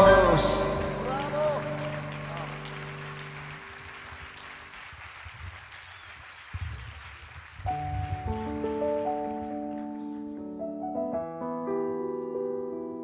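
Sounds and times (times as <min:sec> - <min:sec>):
piano playing chords: 0:00.0 - 0:05.3, 0:07.7 - 0:13.0
audience applause: 0:00.1 - 0:10.5.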